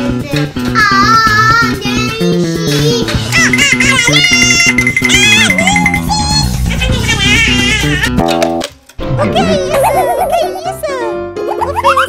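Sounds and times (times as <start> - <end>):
wobbling warbling tone: 3.4 - 8.5.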